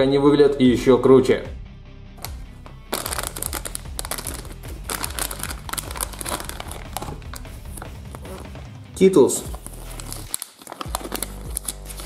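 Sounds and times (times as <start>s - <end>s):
plastic packet crinkling: 2.2s - 8.5s, 9.4s - 12.0s.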